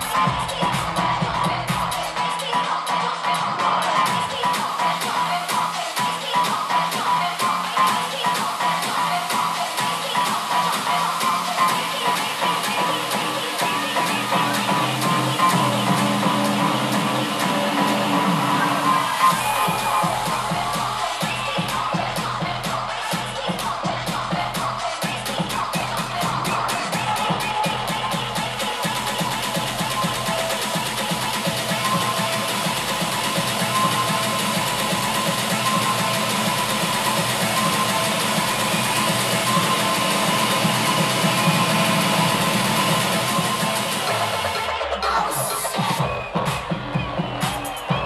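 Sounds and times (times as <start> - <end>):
electronic dance music: 0.0 - 48.0.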